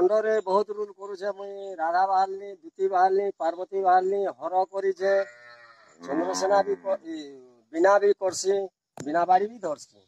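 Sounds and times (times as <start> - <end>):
man talking: 0.0 - 5.3, 6.1 - 10.0
cow mooing: 5.2 - 7.1.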